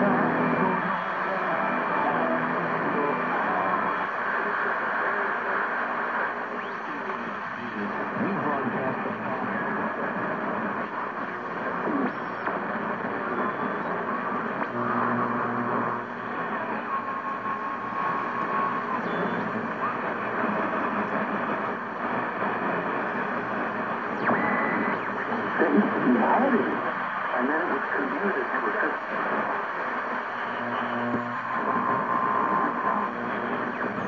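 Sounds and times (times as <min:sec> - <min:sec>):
garbled radio stations: 0:00.0 - 0:34.0
radio static hiss: 0:00.0 - 0:34.0.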